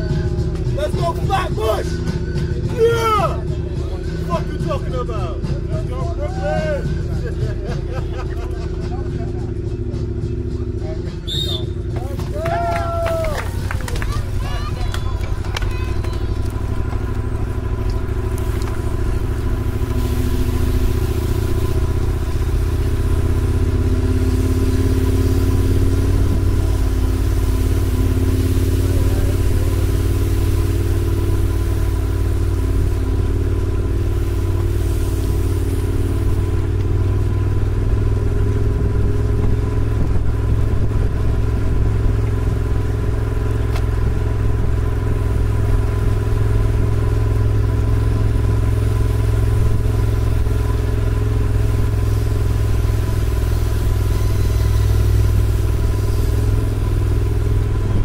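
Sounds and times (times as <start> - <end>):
bicycle drivetrain whir: 7.6 - 58.0
tyre hiss on wet pavement: 11.4 - 58.0
wind rumble: 12.0 - 58.0.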